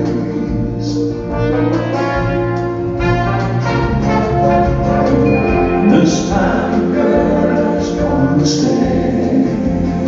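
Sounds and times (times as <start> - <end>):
drums: 0.0 - 10.0
guitars: 0.0 - 10.0
sustained brass chords: 1.3 - 7.1.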